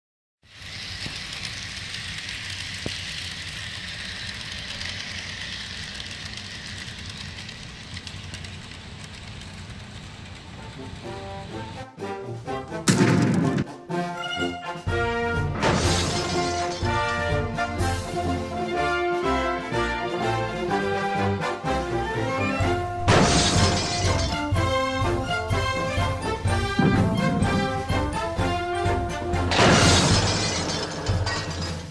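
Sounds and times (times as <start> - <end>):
model train running on track: 0.4 - 12.8, 14.3 - 23.0, 23.9 - 29.6
toy boxcar bursting apart: 0.5 - 9.2, 12.8 - 13.8, 15.6 - 17.8, 23.0 - 24.8, 29.4 - 31.9
orchestral music with brass: 11.0 - 23.7, 24.3 - 29.7.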